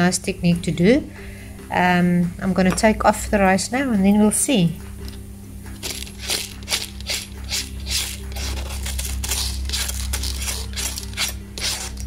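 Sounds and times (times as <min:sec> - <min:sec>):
palette knife scraping paper: 0:05.8 - 0:12.0.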